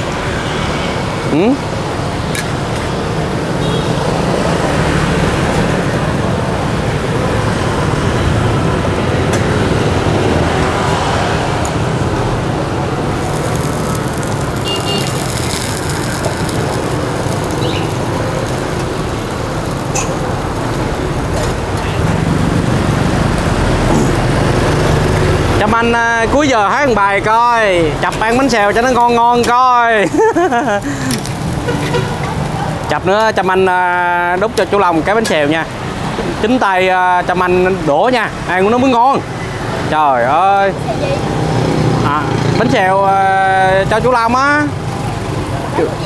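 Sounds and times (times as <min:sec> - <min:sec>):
street traffic: 0:00.0 - 0:46.0
oil sizzling in a wok: 0:13.2 - 0:21.1
utensils clinking: 0:19.9 - 0:20.3.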